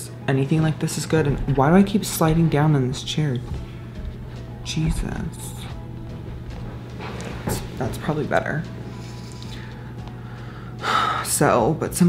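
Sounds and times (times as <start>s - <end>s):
steady low hum: 0.0s - 12.0s
person inhaling: 8.9s - 11.2s.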